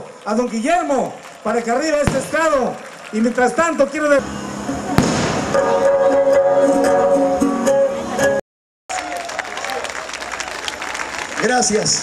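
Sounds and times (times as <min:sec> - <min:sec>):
audience applause: 0:00.0 - 0:04.2, 0:08.9 - 0:12.0
crowd noise: 0:00.0 - 0:12.0.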